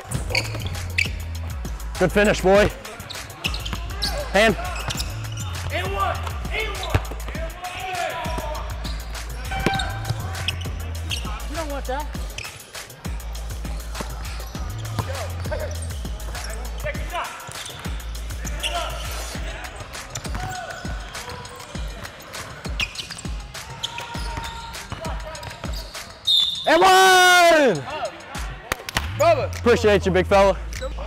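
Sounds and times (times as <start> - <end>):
music with heavy bass: 0.0 - 2.9, 3.6 - 7.5, 8.3 - 12.3, 13.0 - 17.2.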